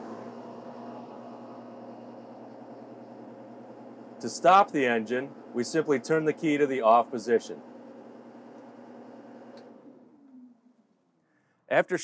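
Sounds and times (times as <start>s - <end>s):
diesel engine idling: 0.0s - 10.7s.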